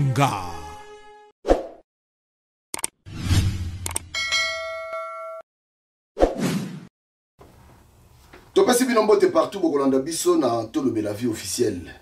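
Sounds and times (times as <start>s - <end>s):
bell chime ringing: 4.1s - 5.4s.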